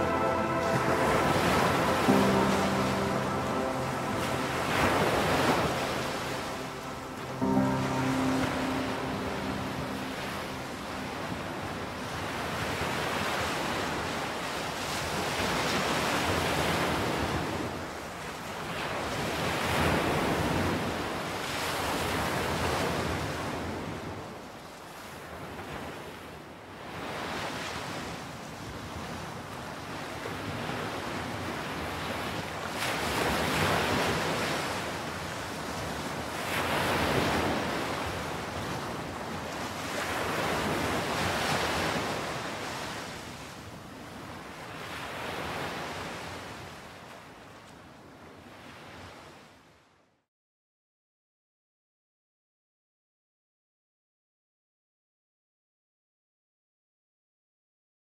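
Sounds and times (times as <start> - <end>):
sea surf breaking on beach: 0.0 - 24.2, 26.9 - 47.4.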